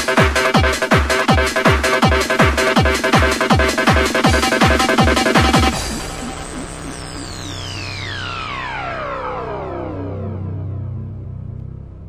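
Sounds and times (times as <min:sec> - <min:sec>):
low bass drone: 0:00.4 - 0:12.0
synth sweep gliding down: 0:01.5 - 0:12.0.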